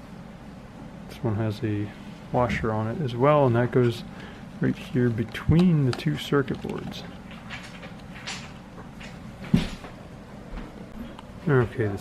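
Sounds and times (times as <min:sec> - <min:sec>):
plastic parts handling: 0:04.8 - 0:09.1.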